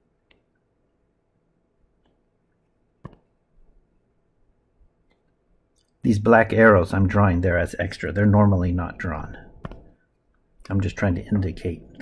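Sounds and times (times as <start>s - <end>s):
stylus tapping on tablet screen: 3.0s - 3.4s, 9.6s - 10.0s.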